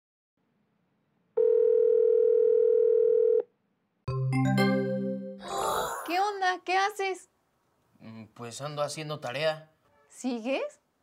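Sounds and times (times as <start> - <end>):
telephone ringing tone: 1.4 - 3.4.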